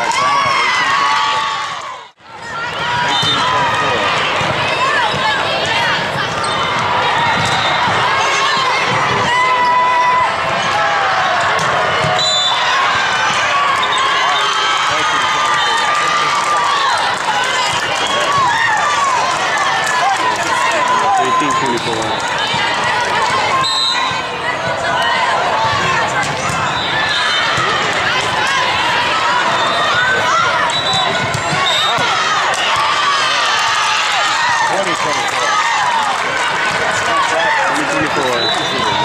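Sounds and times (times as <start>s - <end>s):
crowd calling out and chattering: 0.0s - 39.0s
volleyball struck and bouncing: 4.3s - 8.1s.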